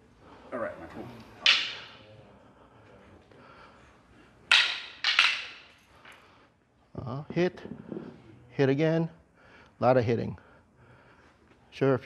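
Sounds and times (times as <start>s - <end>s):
training sticks clacking together: 1.4s - 2.0s, 4.5s - 6.3s.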